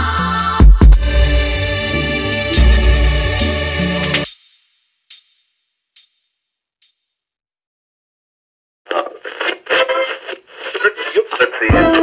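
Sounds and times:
tinny voice through a radio: 8.9s - 12.0s.

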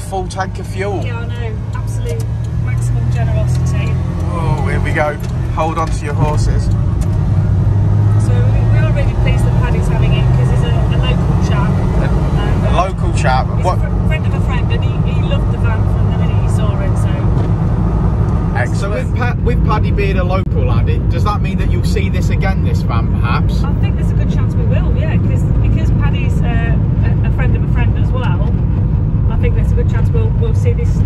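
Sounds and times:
road noise: 0.0s - 31.0s
small truck engine droning: 0.0s - 31.0s.

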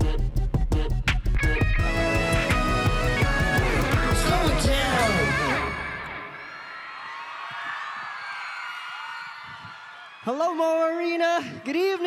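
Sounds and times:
rap backing music: 0.0s - 6.1s
crowd cheering and screaming: 3.2s - 11.2s.

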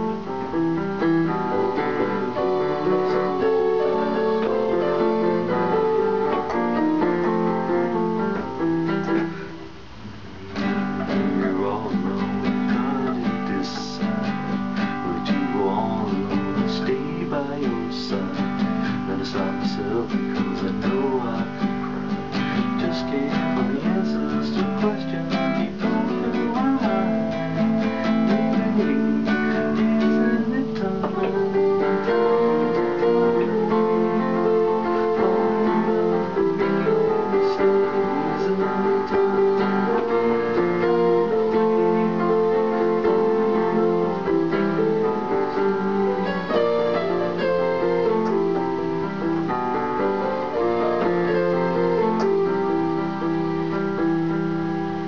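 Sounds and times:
classical guitar strummed: 0.0s - 55.0s
electronic keyboard piano chords: 0.0s - 55.0s.

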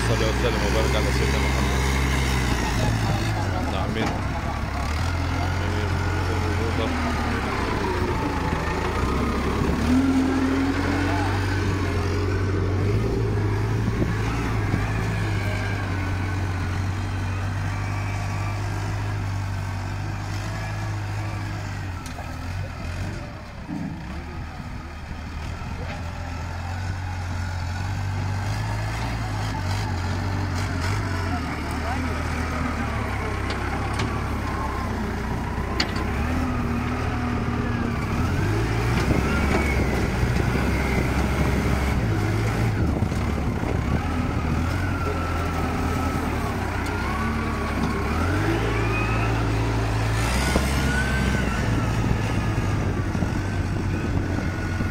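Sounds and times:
diesel engine droning: 0.0s - 54.9s.

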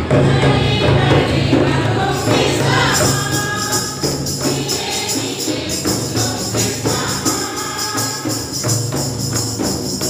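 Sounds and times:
choir singing a hymn: 0.0s - 8.6s
tambourine jingling: 1.2s - 10.0s.

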